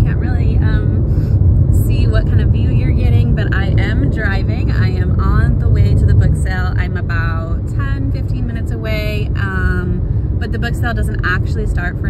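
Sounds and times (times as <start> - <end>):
car interior rumble: 0.0 - 12.0
woman talking: 0.0 - 12.0.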